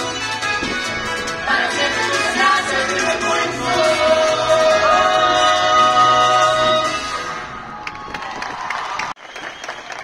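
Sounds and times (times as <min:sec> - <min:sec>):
choir singing: 0:01.4 - 0:07.1
audience applauding: 0:07.8 - 0:10.0.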